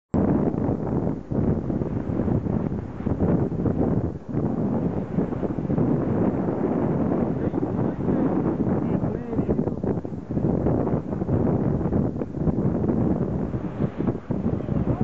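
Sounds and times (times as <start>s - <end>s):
wind buffeting microphone: 0.1s - 15.0s.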